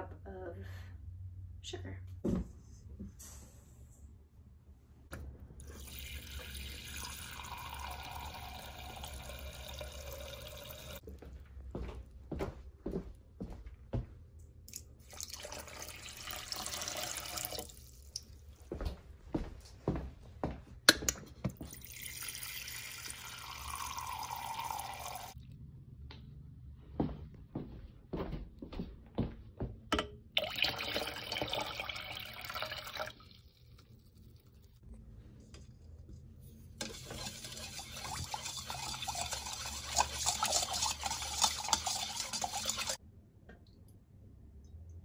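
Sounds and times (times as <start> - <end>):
water dispenser filling cup: 5.6 - 11.0, 15.0 - 18.0, 21.7 - 25.4, 30.4 - 33.7
water pouring into bowl: 5.6 - 11.0, 15.0 - 18.2, 21.7 - 25.4, 30.4 - 34.7, 36.8 - 43.0.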